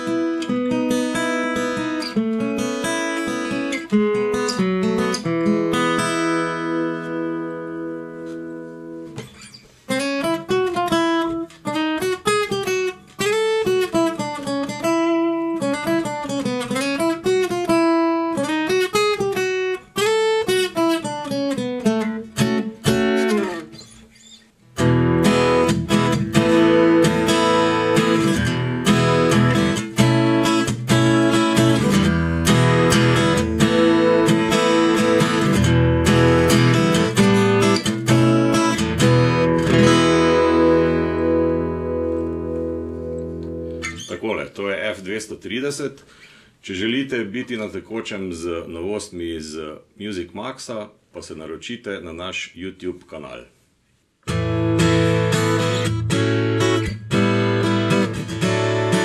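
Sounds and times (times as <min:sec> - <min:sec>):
acoustic guitar playing: 0:00.0 - 0:48.8, 0:54.2 - 0:59.0.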